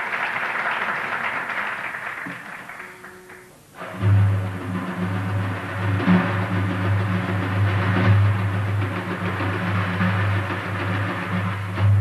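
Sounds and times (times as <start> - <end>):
frame drums rolling: 2.2 - 12.0.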